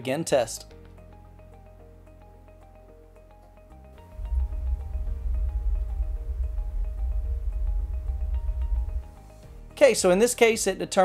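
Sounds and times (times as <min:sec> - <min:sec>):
deep bass test noise from subwoofer: 0:04.2 - 0:09.1.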